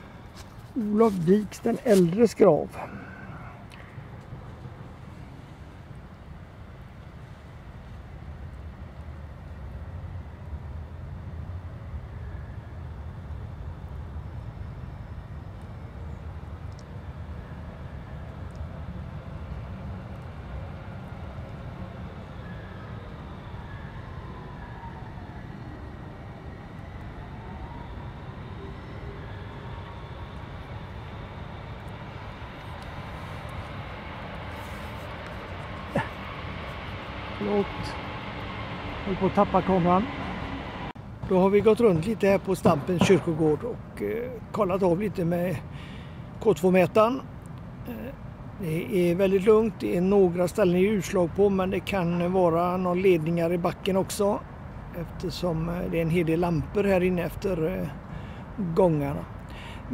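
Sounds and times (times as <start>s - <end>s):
city traffic rumble: 0.0s - 59.9s
vehicle passing: 27.6s - 44.7s
sharp knock: 42.8s - 43.4s.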